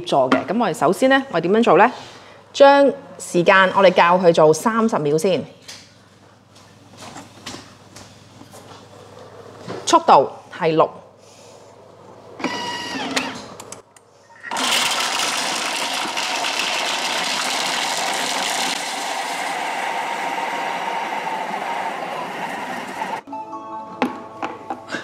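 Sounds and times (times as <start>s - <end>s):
blender blades crushing frozen fruit: 14.5s - 21.0s.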